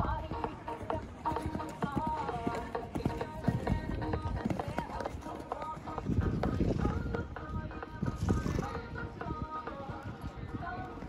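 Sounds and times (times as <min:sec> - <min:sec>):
horse hoofbeats on sand: 0:00.0 - 0:11.0
music playing: 0:00.0 - 0:11.0.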